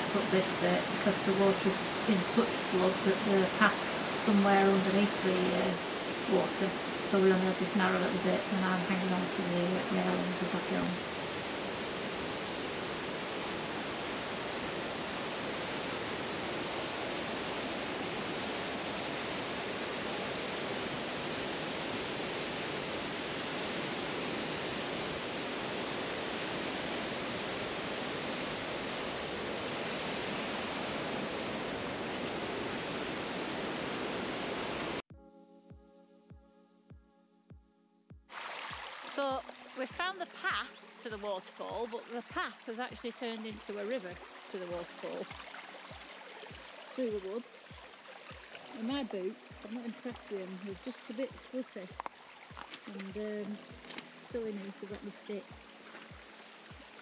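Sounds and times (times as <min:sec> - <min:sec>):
rushing river and waterfall: 0:00.0 - 0:35.0, 0:38.3 - 0:57.0.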